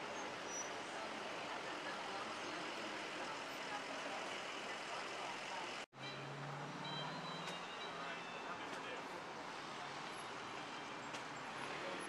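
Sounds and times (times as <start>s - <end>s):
voices: 0.0s - 6.2s, 7.2s - 12.0s
city street traffic: 0.0s - 12.0s.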